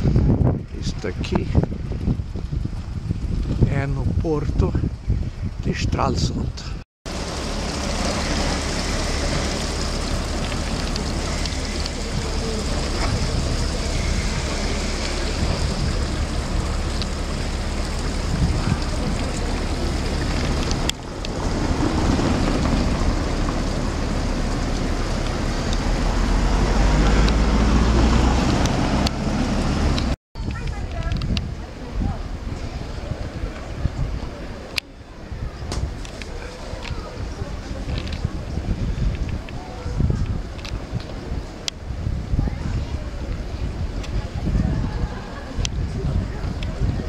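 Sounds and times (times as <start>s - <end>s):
wind rumble on microphone: 0.0s - 47.0s
fountain water splashing on stone: 7.1s - 47.0s.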